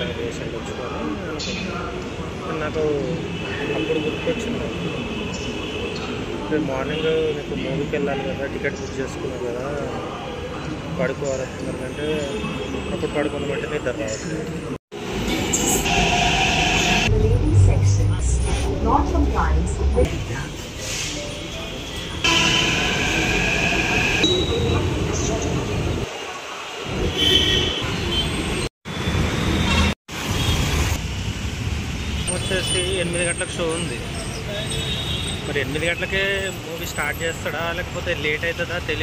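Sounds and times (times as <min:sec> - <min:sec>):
city road traffic: 0:00.0 - 0:39.0
train high whine: 0:15.0 - 0:18.6, 0:22.2 - 0:25.4
vehicle horn: 0:27.0 - 0:28.4.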